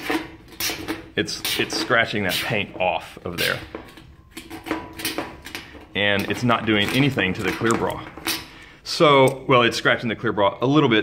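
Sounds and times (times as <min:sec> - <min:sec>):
key scraping painted metal: 0:00.0 - 0:09.4.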